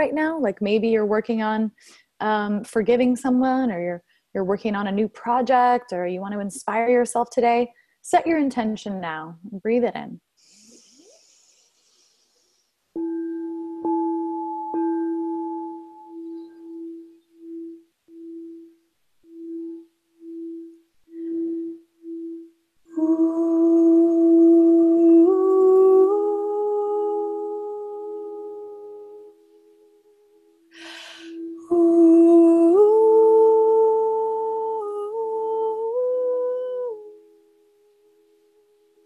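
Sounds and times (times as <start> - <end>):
singing bowl rim tone: 13.0 - 39.0
woman humming: 22.9 - 30.1, 30.8 - 37.3.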